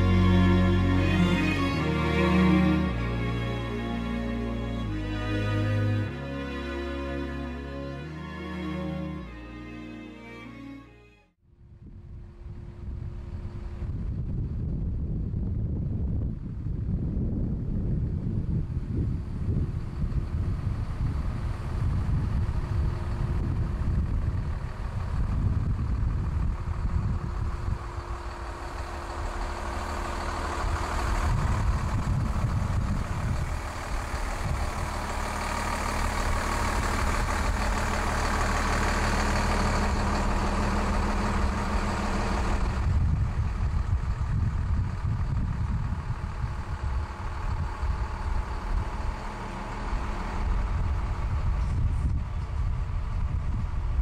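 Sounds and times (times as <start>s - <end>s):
motorhome engine running: 0.0s - 54.0s
wind buffeting microphone: 11.6s - 54.0s.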